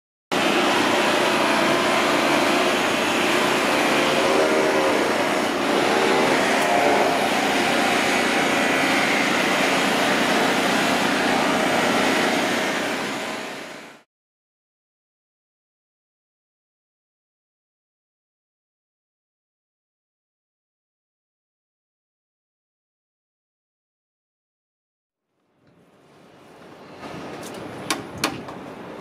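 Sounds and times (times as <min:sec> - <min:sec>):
machinery drone: 0:00.3 - 0:14.0.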